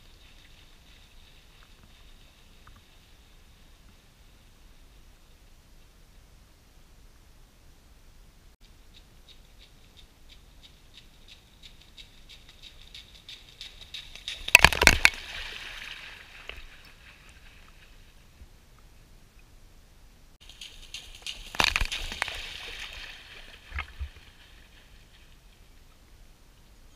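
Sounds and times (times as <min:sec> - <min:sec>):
footsteps splashing through water: 0:11.0 - 0:18.1, 0:20.4 - 0:25.5
water sloshing: 0:13.9 - 0:18.2, 0:20.4 - 0:25.9.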